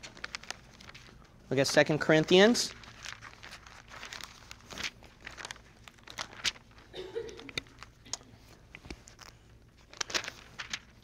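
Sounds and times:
book pages rustling: 0.0 - 11.0.

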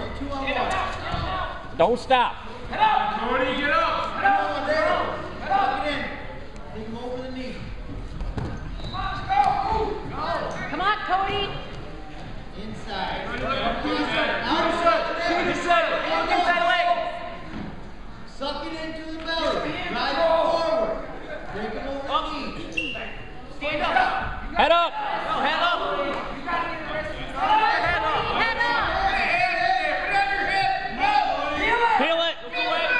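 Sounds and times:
voices shouting in a gymnasium: 0.0 - 32.9
people shouting: 8.9 - 10.5, 27.4 - 32.9.

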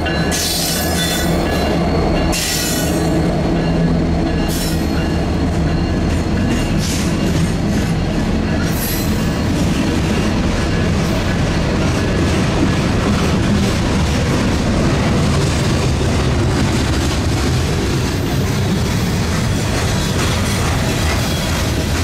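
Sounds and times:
diesel locomotive passing: 0.0 - 22.0
steel wheels rumbling on rail: 0.0 - 22.0.

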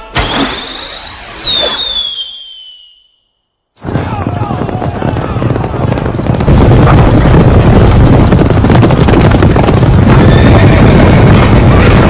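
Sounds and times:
sharp hit: 0.0 - 1.8
high whistle gliding downward: 0.0 - 3.4.

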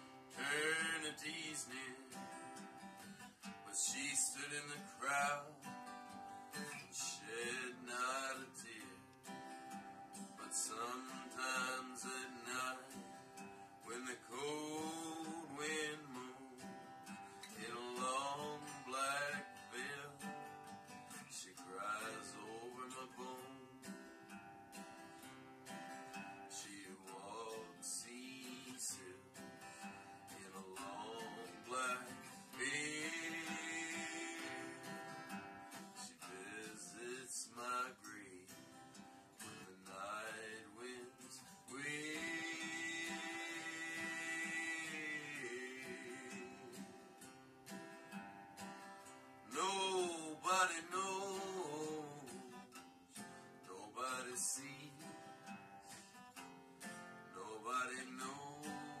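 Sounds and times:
man singing: 0.0 - 2.6, 3.6 - 5.8, 6.6 - 9.1, 10.3 - 20.4, 21.1 - 24.0, 26.2 - 47.3, 49.4 - 55.6, 57.3 - 59.0
acoustic guitar folk ballad: 0.0 - 59.0.

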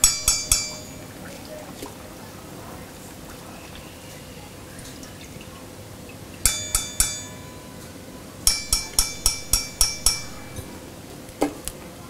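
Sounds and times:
metal spoon clinking on steel pan: 0.0 - 1.2, 6.4 - 11.0.

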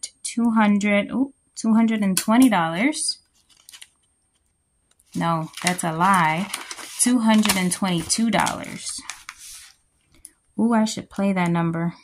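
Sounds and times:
paper and plastic pocket rustling: 3.3 - 4.0, 5.0 - 9.8.

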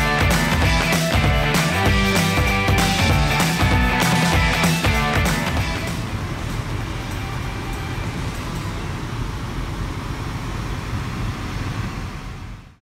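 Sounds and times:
car cabin road and engine rumble: 5.6 - 12.8.

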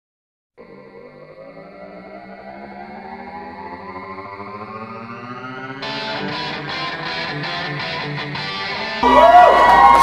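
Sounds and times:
intro music with steady beat: 0.7 - 9.7.

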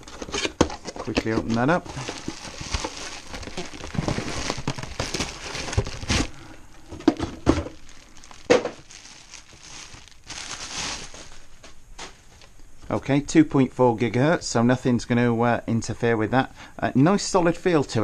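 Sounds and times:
plastic bag crinkling: 0.0 - 12.5.

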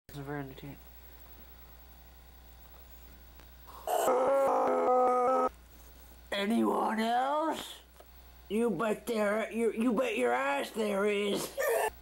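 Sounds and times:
low steady hum: 0.1 - 12.0
person making pulsing vocal sound: 3.7 - 5.5.

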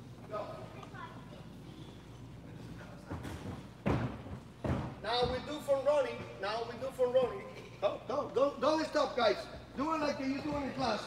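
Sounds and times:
thuds on spring floor: 3.1 - 5.4.

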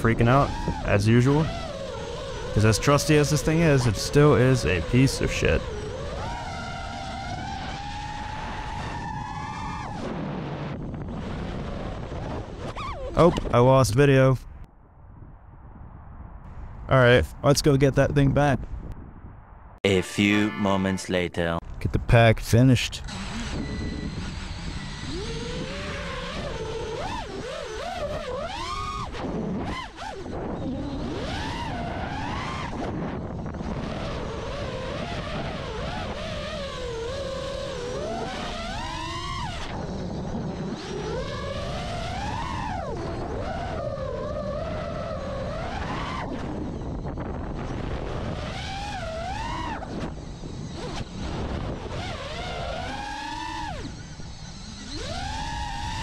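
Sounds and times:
drone motors whining: 0.0 - 14.3, 23.0 - 56.0
wind rushing: 14.4 - 20.4.

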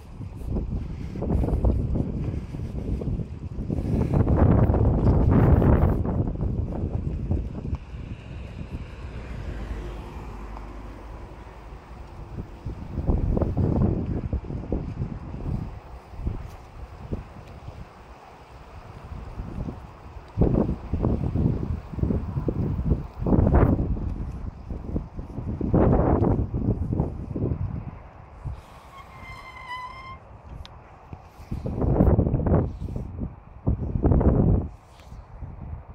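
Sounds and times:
wind buffeting microphone: 0.0 - 35.9.

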